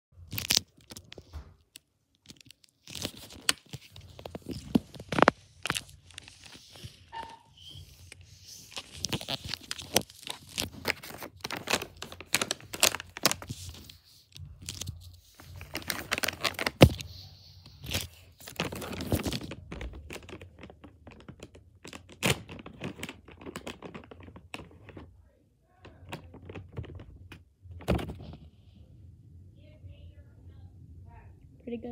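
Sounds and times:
plastic pouch tearing open: 0:00.2 - 0:24.7
plastic snack pouch crinkling: 0:00.2 - 0:25.1.

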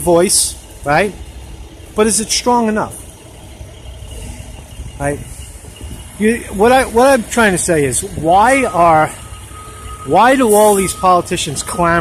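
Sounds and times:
distant city traffic rumble: 0:00.0 - 0:12.0.

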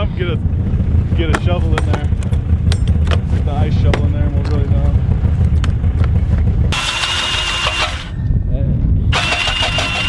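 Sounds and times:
snowmobile engine rumbling: 0:00.0 - 0:10.0
ice auger whining: 0:06.7 - 0:08.1, 0:09.1 - 0:10.0.

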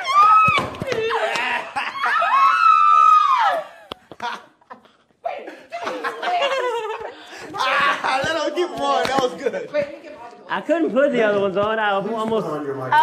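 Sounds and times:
people laughing: 0:00.9 - 0:02.6, 0:03.7 - 0:09.1.

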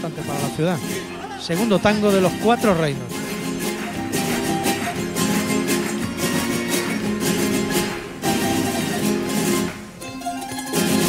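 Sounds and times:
plucked guitars and lutes ensemble: 0:00.0 - 0:11.0.

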